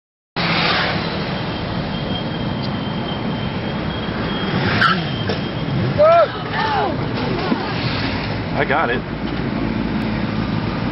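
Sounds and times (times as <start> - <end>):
wind and road noise: 0.4 - 10.9
people shouting: 5.9 - 7.0.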